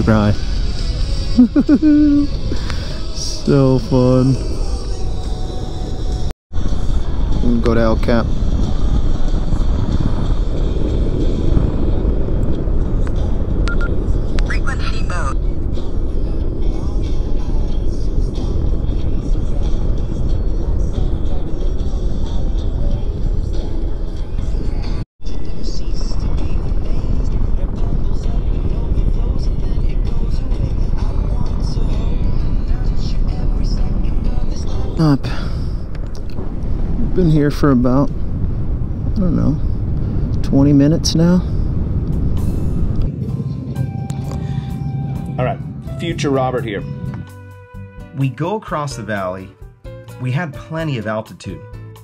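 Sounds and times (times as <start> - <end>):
wind rushing past microphone: 0.0 - 47.4.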